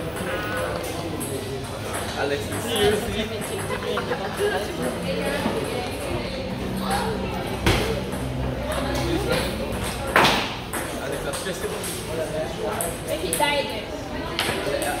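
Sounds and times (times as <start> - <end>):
table tennis ball strikes: 1.1 - 3.8, 7.6 - 12.0.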